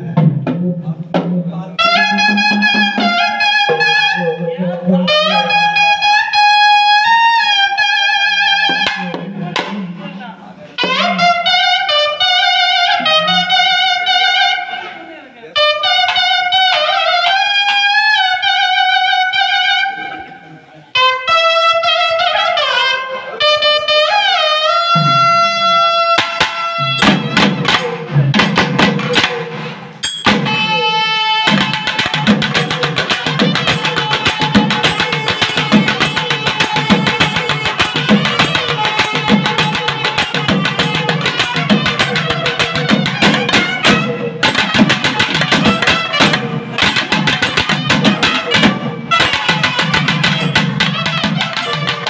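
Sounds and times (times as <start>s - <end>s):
trumpet folk melody: 1.8s - 9.3s, 10.8s - 15.0s, 15.6s - 20.3s, 21.0s - 28.1s, 30.4s - 52.0s
fast drum strokes: 25.0s - 52.0s.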